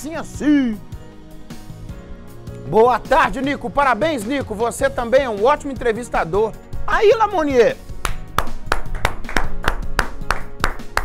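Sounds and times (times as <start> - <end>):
background music: 0.0 - 11.0
hand claps in steady rhythm: 7.9 - 11.0.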